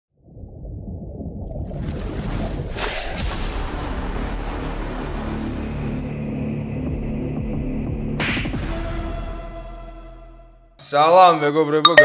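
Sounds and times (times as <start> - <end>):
low underwater rumble: 0.2 - 2.8.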